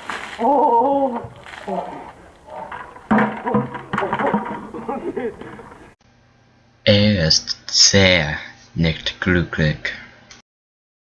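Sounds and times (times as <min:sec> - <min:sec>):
young men's voices: 0:01.1 - 0:06.0.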